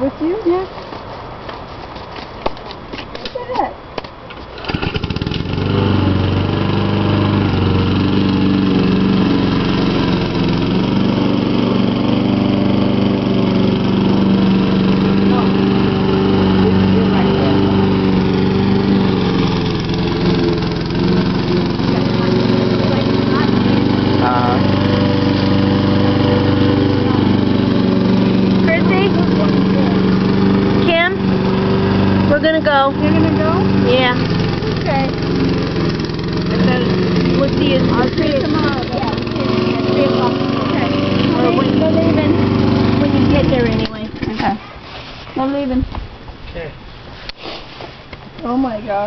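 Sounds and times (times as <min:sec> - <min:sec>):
lawn mower engine running: 0:04.3 - 0:44.7.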